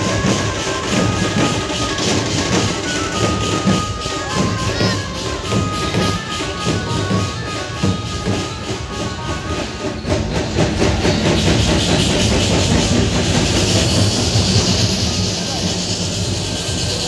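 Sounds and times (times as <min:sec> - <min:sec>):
fast rattling rhythm: 0:00.0 - 0:17.0
street crowd din: 0:00.0 - 0:17.0.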